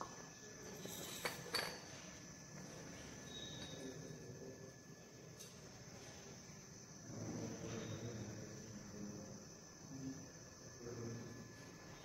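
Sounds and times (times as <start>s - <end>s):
glassware clinking: 0.7s - 1.9s.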